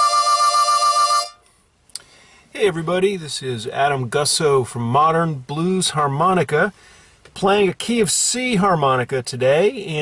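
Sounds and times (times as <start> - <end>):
harmonica long held note: 0.0 - 1.6.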